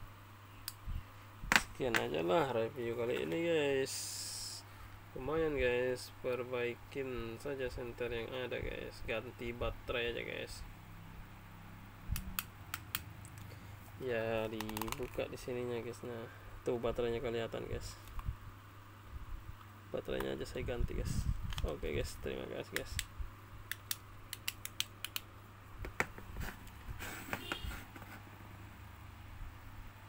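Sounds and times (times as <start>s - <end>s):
sharp plastic clicks: 23.7s - 25.3s.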